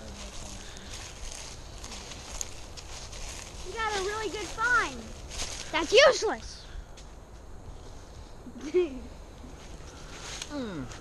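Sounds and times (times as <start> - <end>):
footsteps crunching dry leaves: 0.0 - 6.4.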